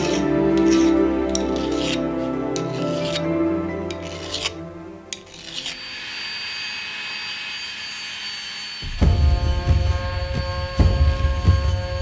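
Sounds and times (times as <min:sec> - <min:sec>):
file rasping on brass: 0:00.0 - 0:03.3, 0:03.9 - 0:04.6, 0:05.2 - 0:08.9
background music: 0:00.0 - 0:05.9, 0:08.8 - 0:12.0.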